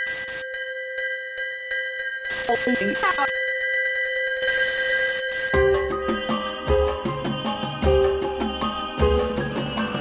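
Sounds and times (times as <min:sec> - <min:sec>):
static hiss: 0:00.0 - 0:00.4
electronic ringing tone: 0:00.0 - 0:00.6, 0:02.2 - 0:03.4, 0:04.0 - 0:05.7.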